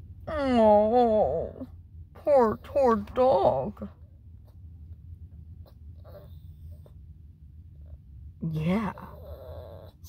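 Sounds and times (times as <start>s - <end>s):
small dog whining: 5.6s - 7.0s, 8.8s - 10.0s.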